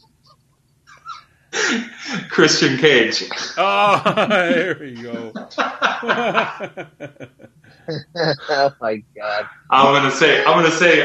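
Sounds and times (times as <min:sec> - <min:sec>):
man bursting out laughing: 0:03.6 - 0:08.7.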